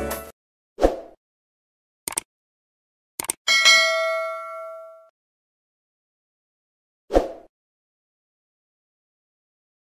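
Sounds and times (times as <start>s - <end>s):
bell ding: 3.5s - 5.1s.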